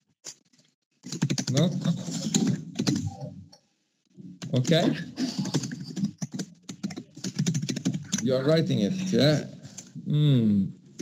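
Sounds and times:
computer keyboard typing: 0:01.0 - 0:03.2, 0:05.4 - 0:08.3.

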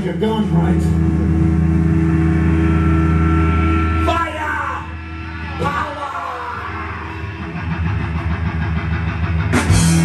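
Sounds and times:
electric bass and guitar drone: 0:00.0 - 0:10.0.

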